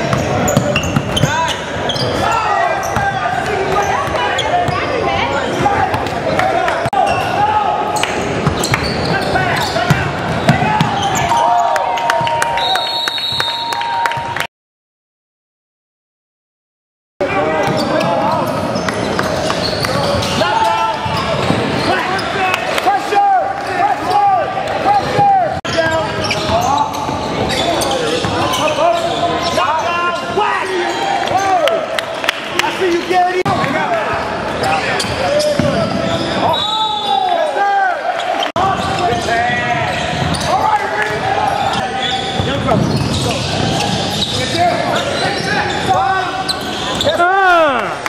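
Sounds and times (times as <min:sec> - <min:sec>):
sneakers squeaking: 0:00.0 - 0:11.6, 0:17.4 - 0:22.8, 0:23.5 - 0:31.6, 0:34.1 - 0:37.5, 0:38.2 - 0:47.2
people calling out: 0:45.2 - 0:48.0.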